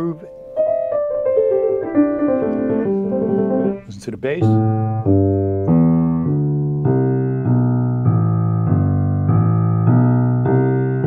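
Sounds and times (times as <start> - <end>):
piano notes stepping down: 0.0 - 11.0.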